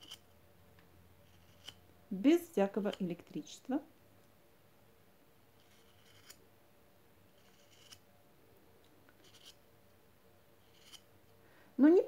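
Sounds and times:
knife shaving wood: 0:01.2 - 0:01.8, 0:05.6 - 0:06.4, 0:07.3 - 0:08.0, 0:10.6 - 0:11.0.

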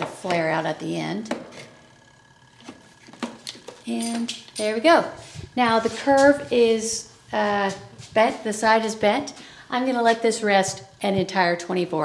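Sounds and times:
woman speaking: 0:00.0 - 0:01.4, 0:03.8 - 0:12.0.

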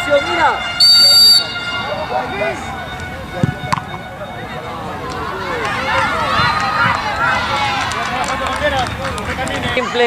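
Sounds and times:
children shouting: 0:04.5 - 0:08.4.

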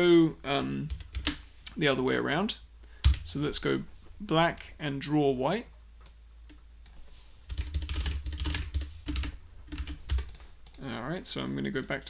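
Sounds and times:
typing on computer keyboard: 0:07.5 - 0:10.8.

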